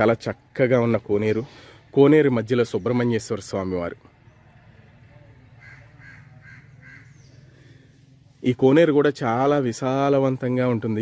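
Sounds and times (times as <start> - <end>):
bird calling: 5.5 - 8.0.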